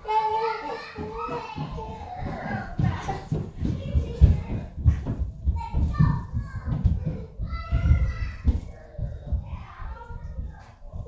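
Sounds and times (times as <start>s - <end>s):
child's voice: 0.0s - 11.0s
low bumps and thumps: 0.9s - 11.0s.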